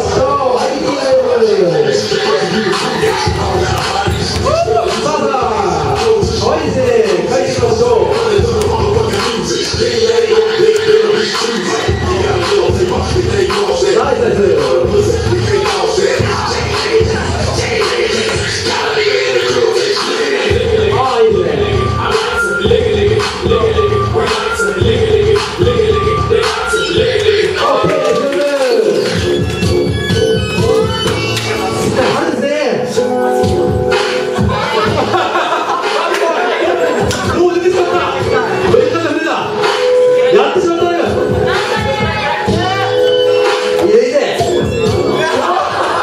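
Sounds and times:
loud hip-hop music: 0:00.0 - 0:46.0.

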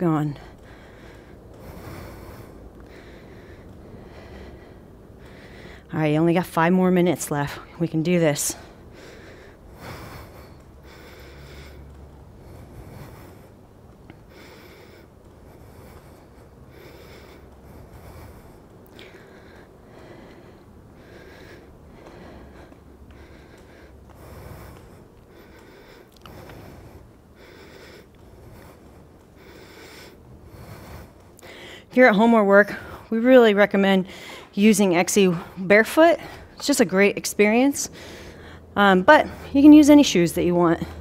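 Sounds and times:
woman breathing: 0:00.0 - 0:41.0.

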